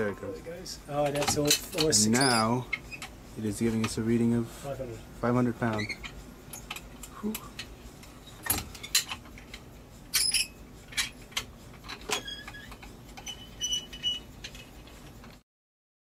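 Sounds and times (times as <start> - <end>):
high ringing tones: 1.9 - 3.0.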